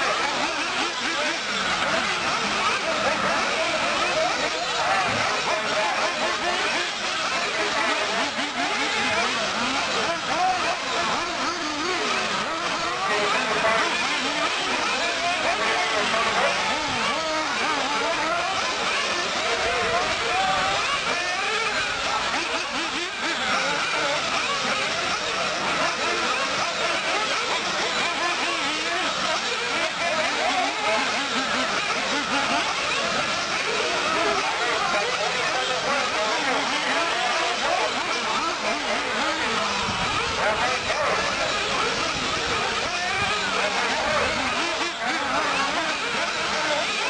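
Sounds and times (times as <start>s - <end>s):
radio-controlled buggy motors whining: 0.0s - 47.0s.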